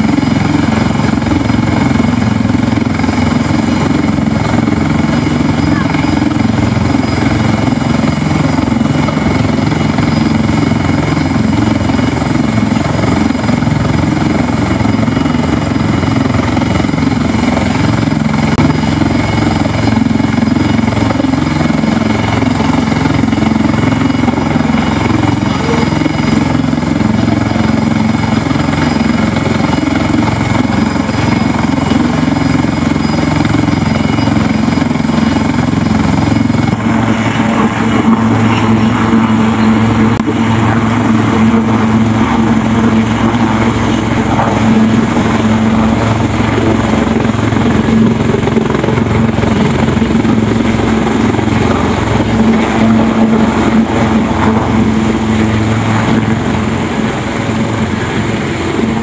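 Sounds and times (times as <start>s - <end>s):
helicopter turbine and rotor: 0.0s - 59.0s
high turbine whine: 0.0s - 59.0s.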